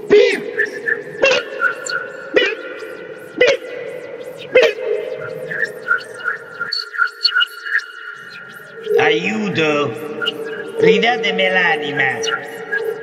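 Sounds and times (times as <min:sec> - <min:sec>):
rapid computer-like beeps: 0:00.0 - 0:13.0
steady electronic hum: 0:00.0 - 0:13.0.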